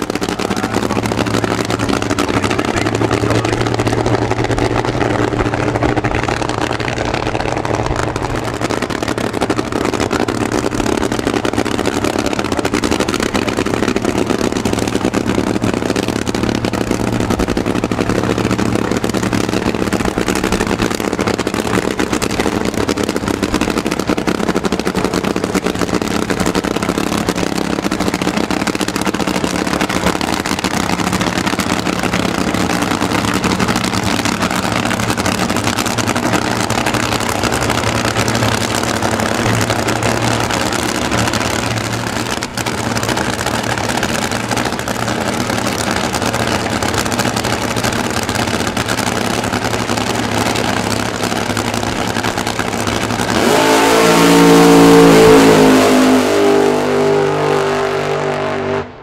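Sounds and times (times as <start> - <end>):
supercharged engine idling: 0.0 - 58.2
engine revving at full throttle: 0.0 - 59.0.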